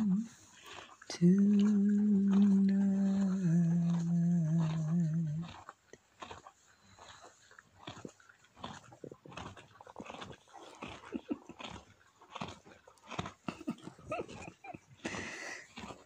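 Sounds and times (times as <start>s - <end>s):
foal sniffing and snuffling: 14.7s - 16.0s.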